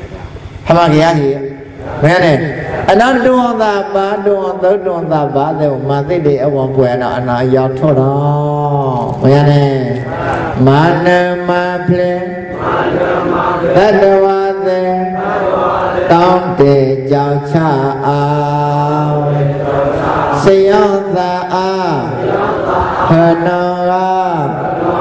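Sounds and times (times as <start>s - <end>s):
man chanting: 0.7s - 13.0s, 13.6s - 22.2s, 23.0s - 25.0s.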